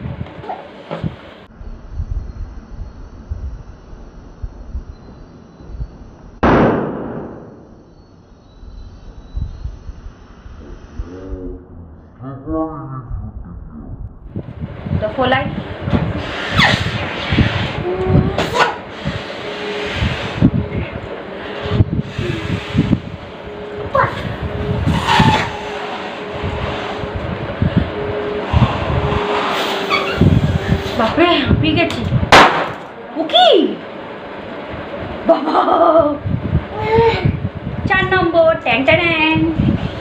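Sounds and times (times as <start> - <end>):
balloon being inflated by mouth: 16.2 - 20.4
balloon bursting: 32.3 - 32.9.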